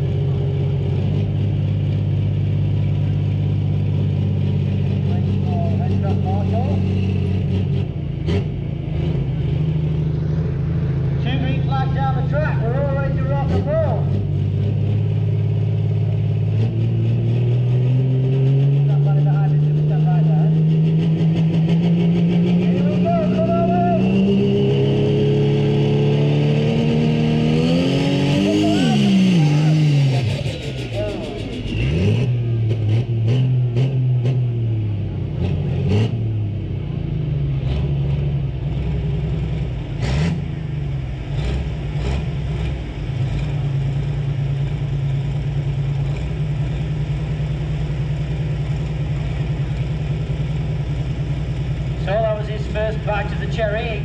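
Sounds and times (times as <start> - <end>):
tractor diesel engine revving: 0.0 - 54.0.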